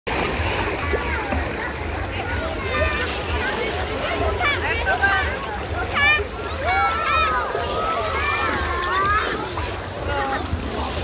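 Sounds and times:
babble of many voices: 0.1s - 11.0s
water splashing: 0.1s - 11.0s.

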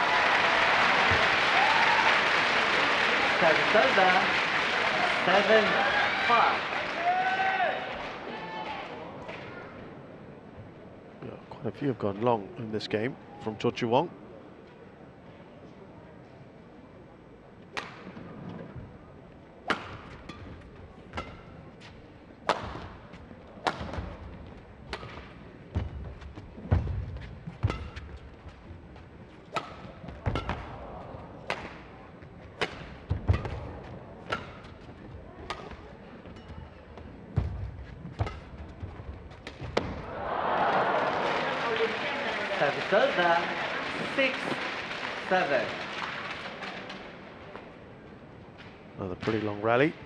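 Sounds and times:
crowd cheering and applauding: 0.0s - 8.8s, 40.0s - 47.0s
racket hitting shuttlecock: 17.7s - 18.2s, 19.6s - 21.6s, 22.4s - 23.0s, 23.6s - 28.3s, 29.5s - 31.9s, 32.6s - 36.5s, 37.4s - 40.1s.

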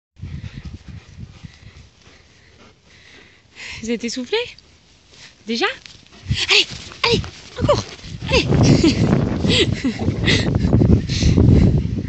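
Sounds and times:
dog panting: 0.2s - 3.5s.

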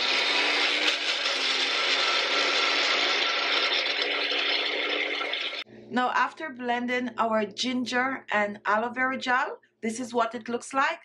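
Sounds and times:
blender grinding ginger: 0.0s - 5.6s.

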